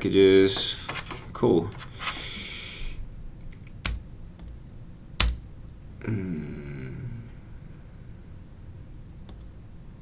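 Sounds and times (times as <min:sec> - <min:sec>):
person speaking: 0:00.0 - 0:03.0.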